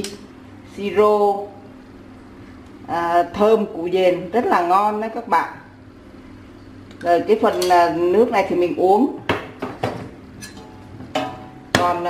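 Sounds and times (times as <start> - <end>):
metal ladle knocking on pot: 9.3 - 12.0.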